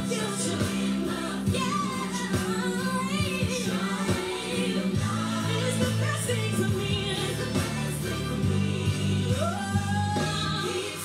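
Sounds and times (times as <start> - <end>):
person singing gospel: 0.0 - 11.0.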